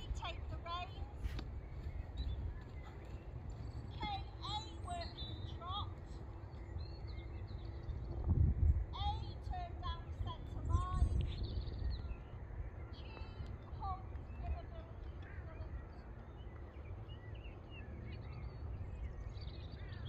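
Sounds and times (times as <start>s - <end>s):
birds chirping and singing: 0.0s - 20.0s.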